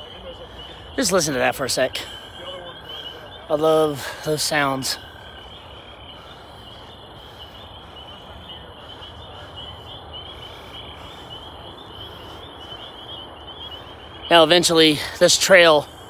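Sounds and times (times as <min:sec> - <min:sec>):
distant road traffic rumble: 0:00.0 - 0:16.0.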